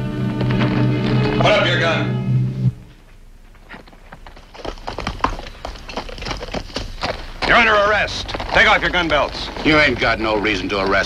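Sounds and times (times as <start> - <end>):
dramatic score music chord: 0.0 - 2.9
horse hooves on dirt: 3.5 - 11.0.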